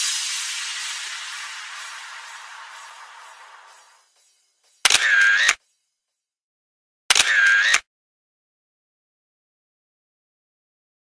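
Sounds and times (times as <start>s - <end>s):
camera shutter: 4.8s - 5.6s, 7.1s - 7.8s.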